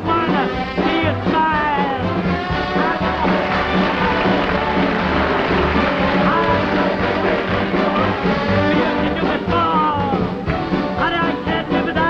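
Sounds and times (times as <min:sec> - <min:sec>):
steady bass beat: 0:00.0 - 0:10.7
band playing swing music: 0:00.0 - 0:12.0.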